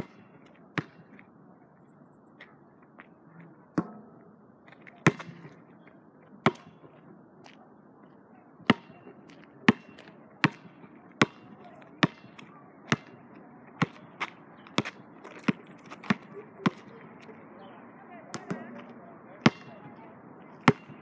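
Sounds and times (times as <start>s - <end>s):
basketball bouncing: 5.0s - 5.5s, 8.7s - 9.0s, 9.7s - 13.2s, 13.8s - 14.1s, 14.7s - 16.9s, 18.3s - 18.8s, 19.4s - 19.9s, 20.6s - 21.0s.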